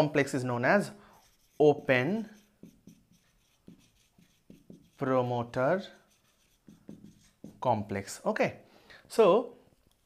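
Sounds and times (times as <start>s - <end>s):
marker pen writing on whiteboard: 0.8s - 8.0s.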